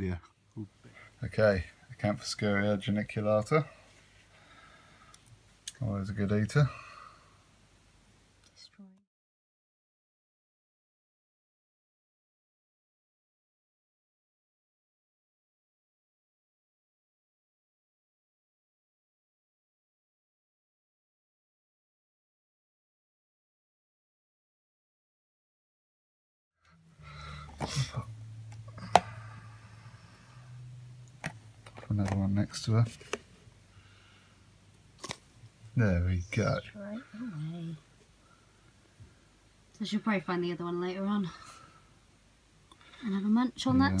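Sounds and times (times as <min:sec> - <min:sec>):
faint low hum: 0:26.6 - 0:44.0.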